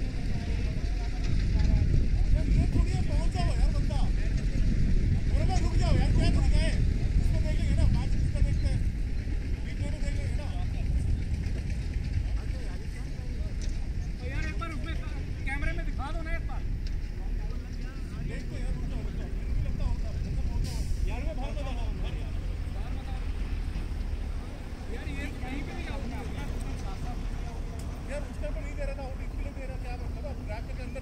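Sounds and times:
distant voices calling and chatting: 0:00.0 - 0:31.0
steady low rumble: 0:00.0 - 0:31.0.

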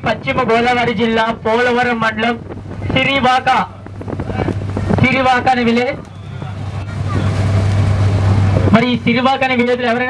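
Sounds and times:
boat engine drone: 0:00.0 - 0:10.0
wind on microphone: 0:00.0 - 0:10.0.

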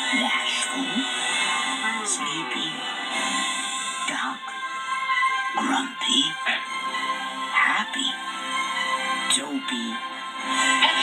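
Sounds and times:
trailer music through tv speaker: 0:00.0 - 0:11.0.

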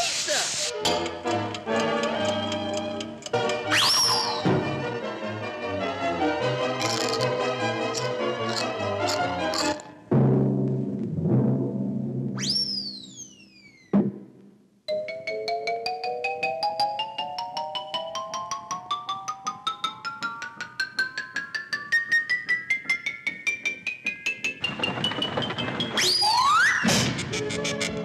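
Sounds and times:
cartoon music: 0:03.6 - 0:04.7
falling whistle ending in thump: 0:12.4 - 0:13.8
noisy burst with swooping whistle: 0:12.4 - 0:13.8.

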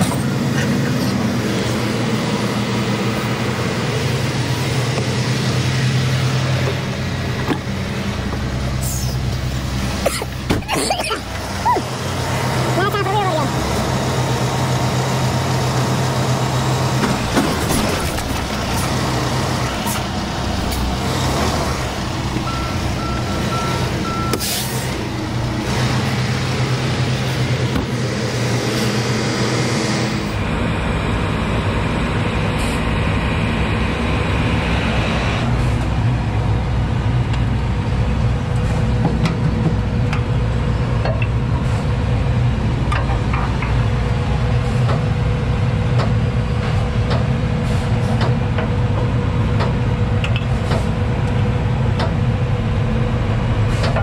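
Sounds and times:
diesel engine idling: 0:00.0 - 0:54.0.

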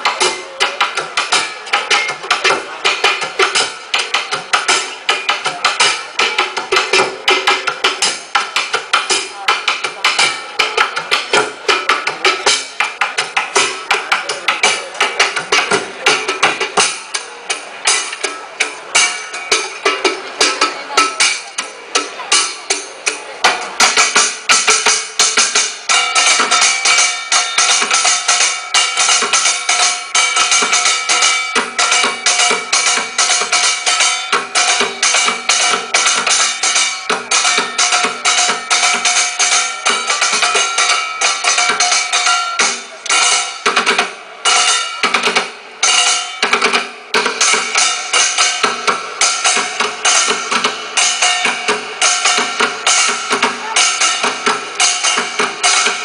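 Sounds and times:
fast busy percussion: 0:00.0 - 0:56.0.

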